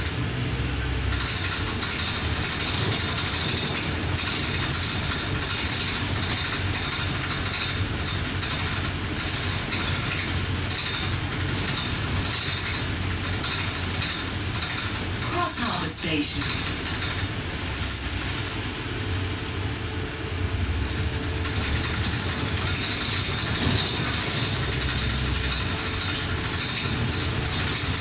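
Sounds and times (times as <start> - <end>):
bus body rattles: 0.0 - 28.0
bus engine and road noise: 0.0 - 28.0.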